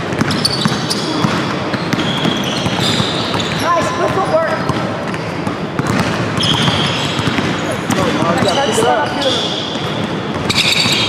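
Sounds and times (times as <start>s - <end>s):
basketball dribbling on hardwood: 0.0s - 8.6s.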